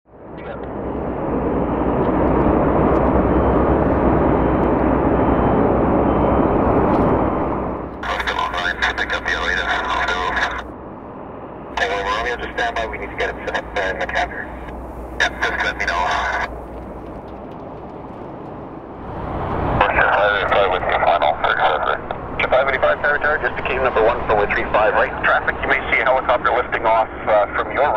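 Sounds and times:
radio voice transmissions: 0.4s - 0.7s, 8.0s - 10.7s, 11.8s - 16.5s, 19.8s - 27.9s
radio static hiss: 8.0s - 10.7s, 11.8s - 16.7s, 19.8s - 27.9s.

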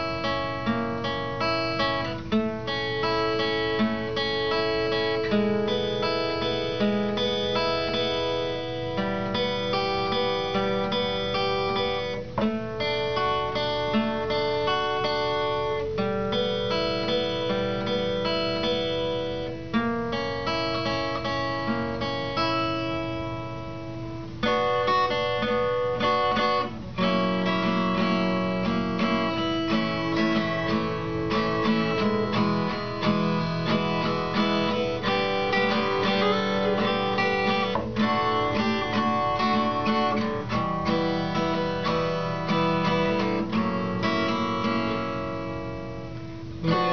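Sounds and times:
acoustic guitar strumming: 0.0s - 46.9s.

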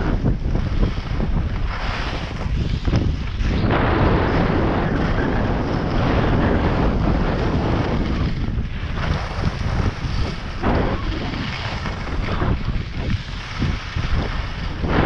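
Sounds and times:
skis sliding over snow: 0.0s - 15.0s
wind rushing over microphone: 0.0s - 15.0s.

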